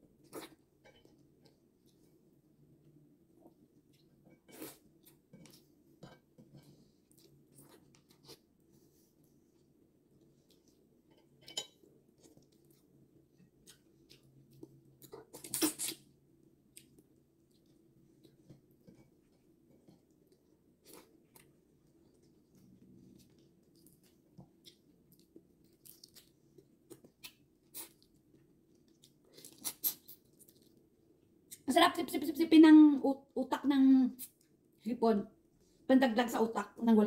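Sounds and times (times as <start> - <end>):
chewing: 16.7 - 30.8.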